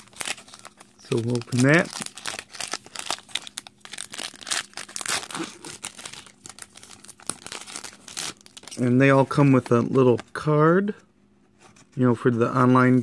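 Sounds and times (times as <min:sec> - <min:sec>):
foil wrapper crinkling and tearing: 0:00.0 - 0:09.7.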